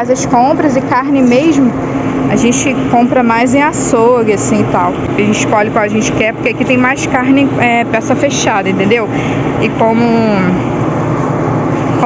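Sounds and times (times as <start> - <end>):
woman's drawn-out voice: 0.0 - 10.6
low hum: 0.0 - 12.0.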